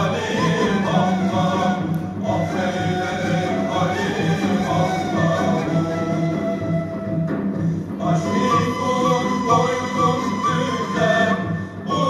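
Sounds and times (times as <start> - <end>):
male choir singing a hymn: 0.0 - 6.8, 8.0 - 12.0
low instrumental accompaniment: 0.0 - 12.0.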